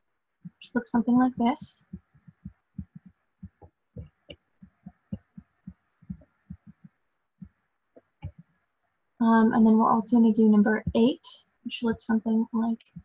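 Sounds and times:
stylus tapping on tablet screen: 0.4s - 0.7s, 1.3s - 8.7s, 10.8s - 13.0s.

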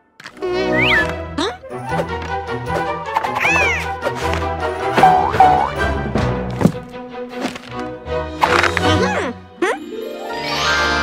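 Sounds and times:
playful cartoon music: 0.1s - 11.0s.

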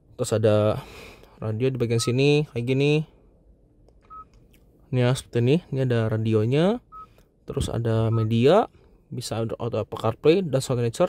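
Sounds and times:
short high beep: 8.1s - 8.3s.

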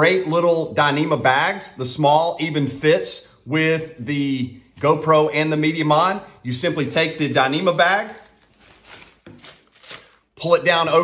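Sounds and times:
stuff sack crinkling and rustling: 7.8s - 10.3s.

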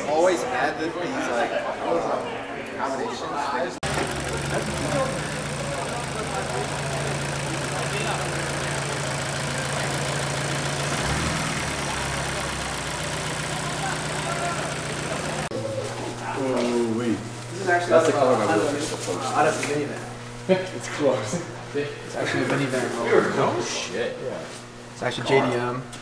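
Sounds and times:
car engine idling: 3.8s - 15.5s.

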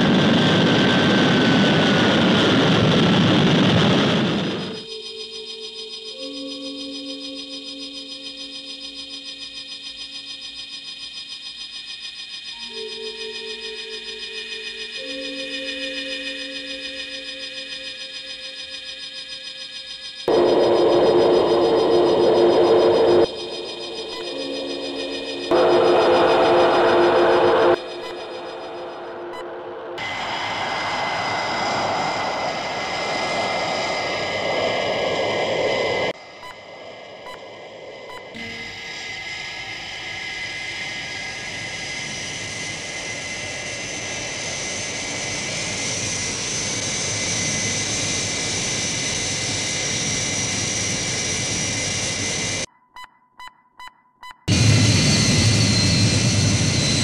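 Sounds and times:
jet engine roar: 0.0s - 5.0s, 20.3s - 52.7s, 54.5s - 57.0s
music: 4.8s - 11.5s, 12.5s - 20.2s, 23.2s - 30.0s
short electronic tones: 21.1s - 30.0s.

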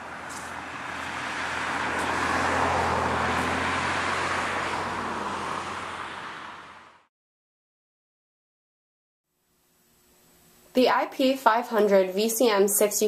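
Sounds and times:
car passing: 0.0s - 7.1s.

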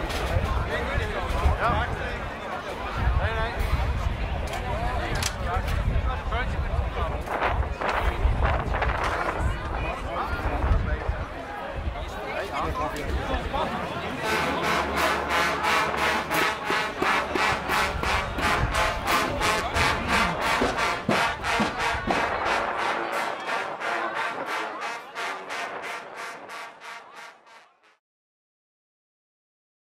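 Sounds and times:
crowd voices: 0.0s - 28.0s.

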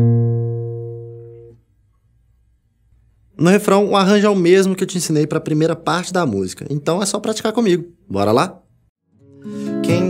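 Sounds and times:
classical guitar chord plucked: 0.0s - 1.6s, 9.1s - 10.0s.

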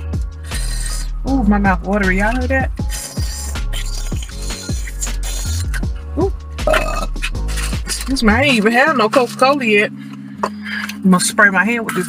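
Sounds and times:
music with steady beat and deep bass: 0.0s - 12.0s.

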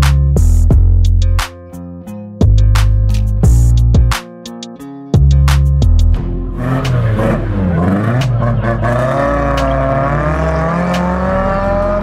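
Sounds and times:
background music with drum hits: 2.4s - 12.0s
car engine revving: 6.3s - 12.0s.

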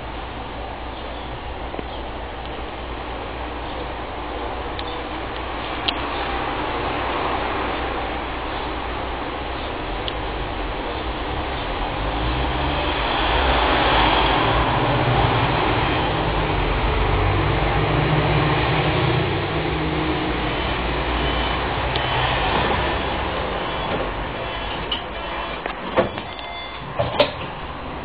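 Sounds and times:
tram running on track: 0.0s - 28.0s.

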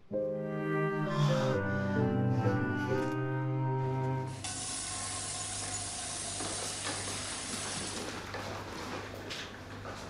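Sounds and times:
steady hiss: 4.4s - 8.1s.

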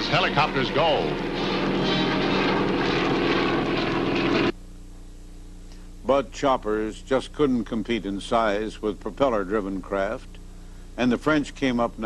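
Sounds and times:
helicopter engine and rotor: 0.0s - 4.5s.

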